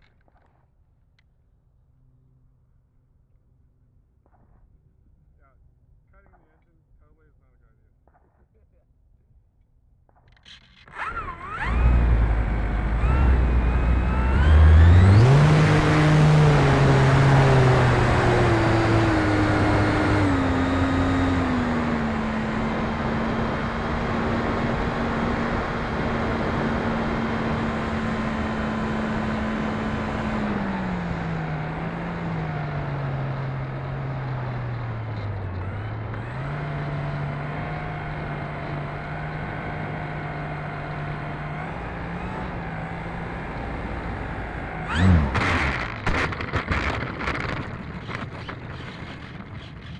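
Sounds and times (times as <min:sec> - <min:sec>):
electric motor and propeller: 0:10.4 - 0:33.1, 0:33.8 - 0:49.9.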